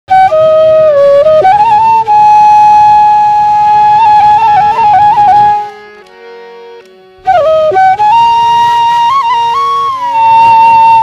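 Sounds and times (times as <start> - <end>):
flute long note: 0.1 - 11.0.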